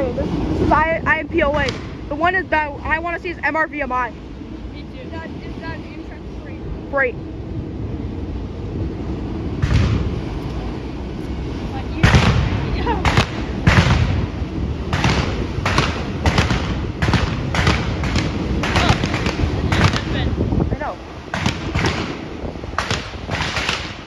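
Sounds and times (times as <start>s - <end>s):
train rumbling: 0.0s - 24.0s.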